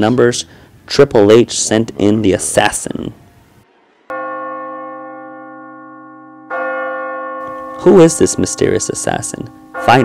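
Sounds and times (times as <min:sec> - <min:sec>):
bell tolling: 0:03.1 - 0:10.0.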